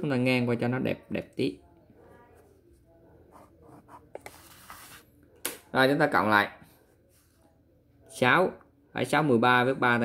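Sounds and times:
pen scratching on paper: 0:03.3 - 0:05.1.

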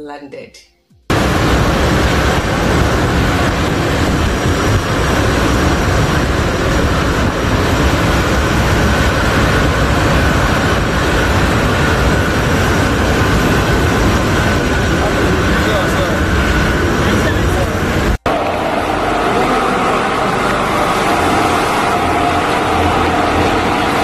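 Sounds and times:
jet engines roaring: 0:01.1 - 0:24.0.

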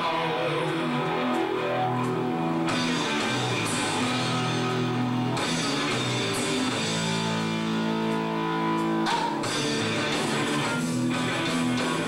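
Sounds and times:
electric guitar sustained notes: 0:00.0 - 0:12.0
live rock band instrumental: 0:00.0 - 0:12.0.

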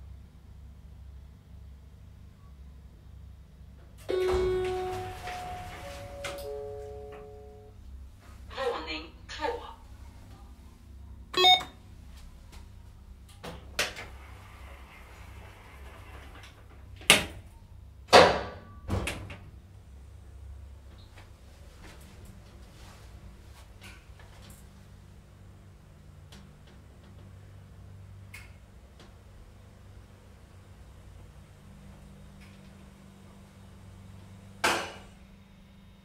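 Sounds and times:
low steady hum: 0:00.0 - 0:36.0
elevator doors banging shut: 0:04.0 - 0:07.4, 0:18.1 - 0:19.6
sharp clunk: 0:34.6 - 0:35.1.

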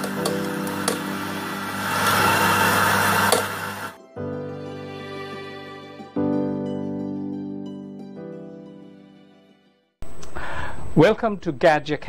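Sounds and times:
espresso machine humming and hissing: 0:00.0 - 0:04.0.

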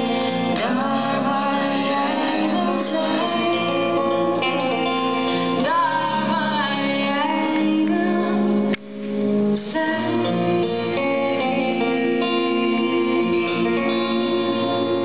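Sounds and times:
woman singing into a microphone: 0:00.0 - 0:08.8, 0:09.5 - 0:15.0
live band slow guitar song: 0:00.0 - 0:15.0.

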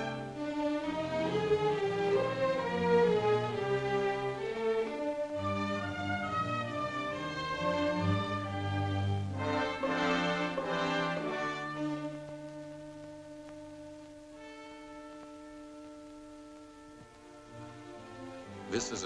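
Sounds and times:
orchestral string music: 0:00.0 - 0:19.0.

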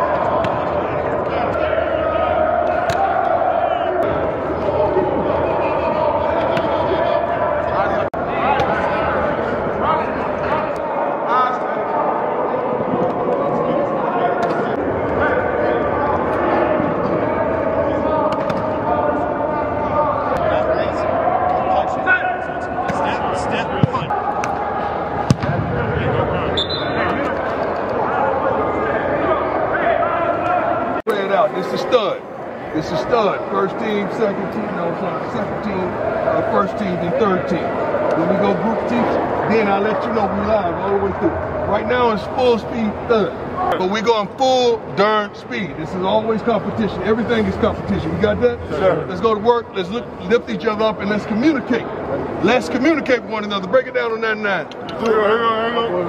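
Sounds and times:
many voices talking: 0:00.0 - 0:56.0.

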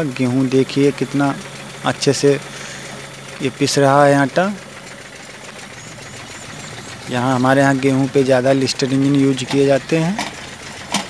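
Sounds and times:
diesel engine running under load: 0:00.0 - 0:11.0.

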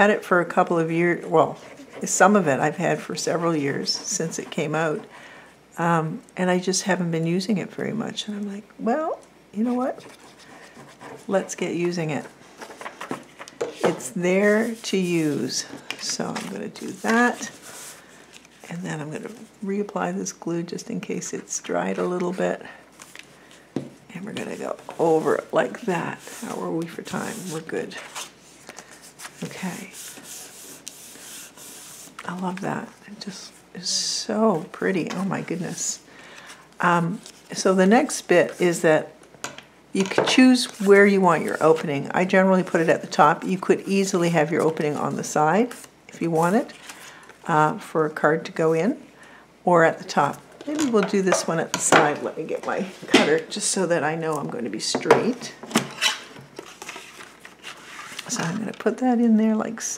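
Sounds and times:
palms rubbing paper swishing: 0:09.7 - 0:19.5, 0:24.3 - 0:32.7
paper and plastic rustling: 0:12.1 - 0:19.6, 0:55.2 - 0:58.8.

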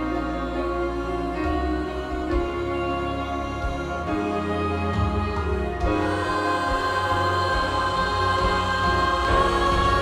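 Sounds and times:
choir singing sustained notes: 0:00.0 - 0:10.0
low accompaniment: 0:00.0 - 0:10.0.

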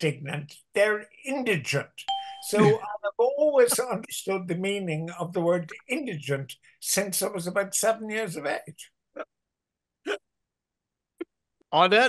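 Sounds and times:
person's voice: 0:00.0 - 0:08.8.

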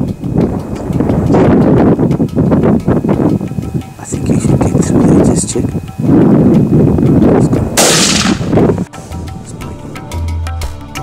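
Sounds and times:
wind rumble on microphone: 0:00.0 - 0:10.0
music: 0:00.0 - 0:11.0
rifle shot: 0:07.8 - 0:08.6.

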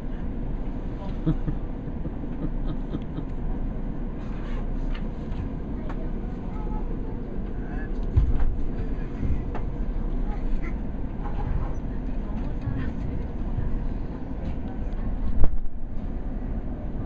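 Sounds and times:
train carriage rumble: 0:00.0 - 0:17.0
faint voices: 0:05.2 - 0:17.0.

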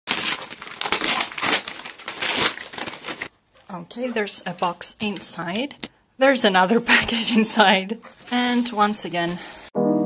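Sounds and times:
paper tearing and crumpling: 0:00.1 - 0:03.3, 0:08.1 - 0:09.7.

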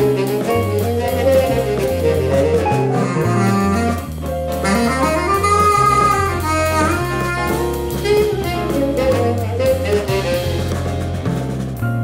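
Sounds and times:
tenor saxophone solo: 0:00.0 - 0:11.1
bass: 0:00.0 - 0:12.0
drums: 0:00.0 - 0:12.0.

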